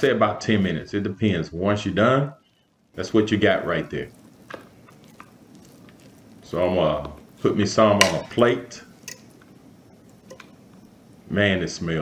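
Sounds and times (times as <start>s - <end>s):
soft squishing of cabbage: 2.4s - 11.0s
utensil clicking against pan: 9.0s - 9.4s.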